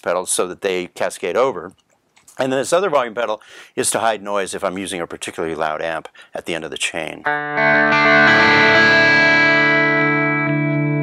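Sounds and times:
electric guitar sustained chord: 7.3 - 11.0.

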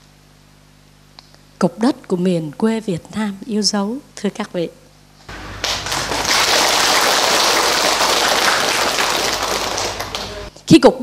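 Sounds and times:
audience applauding: 5.3 - 10.5.

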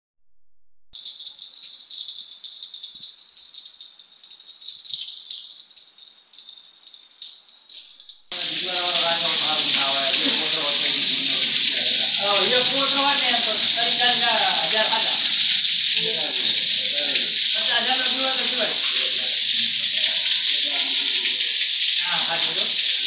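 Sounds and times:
rain falling: 1.0 - 23.0
man's voice: 8.3 - 15.3, 16.0 - 22.8
heavy downpour hiss: 8.3 - 23.0.

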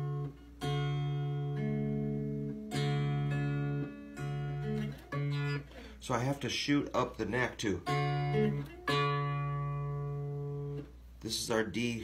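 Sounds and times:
electric guitar notes ringing: 0.0 - 6.0, 7.1 - 11.1.

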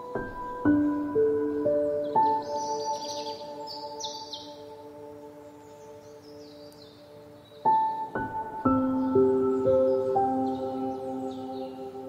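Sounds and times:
slow relaxation music chord: 0.0 - 12.0.

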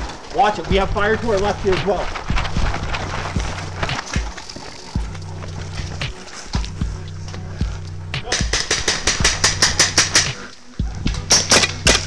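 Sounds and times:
running footsteps through grass: 0.0 - 8.2
gear knocking: 0.0 - 12.0
background music with bass line: 0.7 - 12.0.

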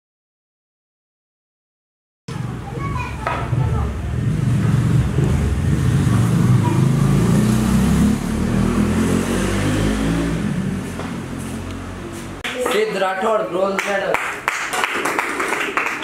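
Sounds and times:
indistinct voices: 2.3 - 8.5
loud low rumble: 2.3 - 12.3.

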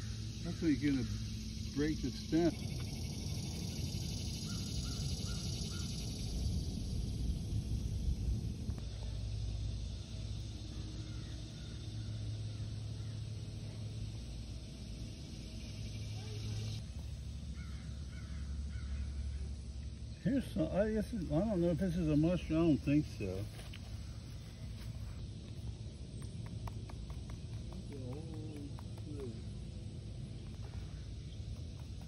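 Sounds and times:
high insect-like hiss: 0.0 - 32.0
low wind rumble: 0.0 - 32.0
faint bird calls: 3.5 - 6.1, 10.7 - 13.9, 17.5 - 20.2.

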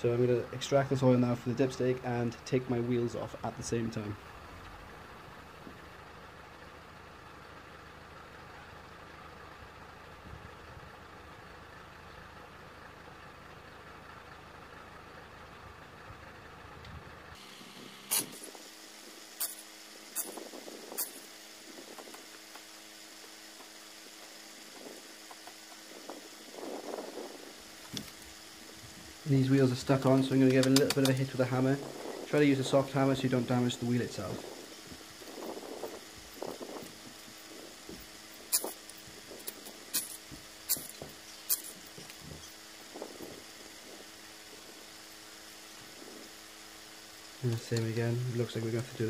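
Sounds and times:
faint steady hum: 0.0 - 49.0
sharp metallic tool clicks: 19.4 - 19.6, 21.0 - 21.2, 30.5 - 31.3.

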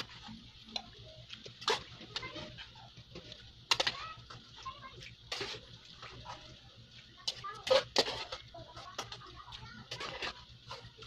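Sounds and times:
metal spoon scraping a pot: 1.6 - 2.8, 3.7 - 4.0, 5.3 - 6.5, 7.2 - 11.0.

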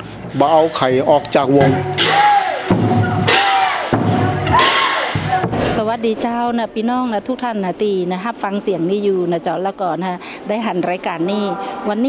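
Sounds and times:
drum beaten with padded mallets: 1.5 - 5.9
ringing drum tone: 1.5 - 5.9.

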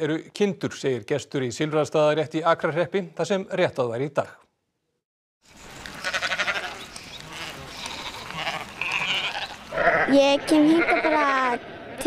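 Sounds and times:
flock of sheep bleating: 6.0 - 12.0.

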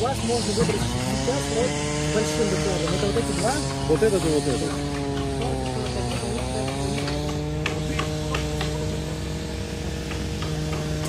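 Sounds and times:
machine engine droning: 0.0 - 11.0
sharp hammering knocks on timber: 4.8 - 11.0.

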